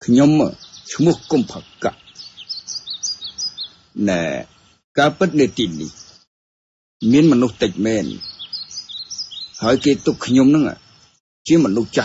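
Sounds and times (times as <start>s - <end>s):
small birds chirping: 0.0s - 6.3s, 7.0s - 12.0s.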